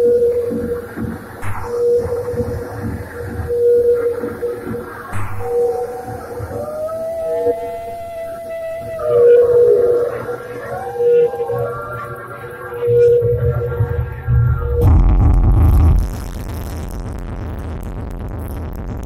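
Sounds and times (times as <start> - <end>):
held synth drone: 0.0 - 16.4
gliding wavering synth tones: 3.6 - 15.0
low bass swells: 11.8 - 19.0
dense low rumble: 12.2 - 19.0.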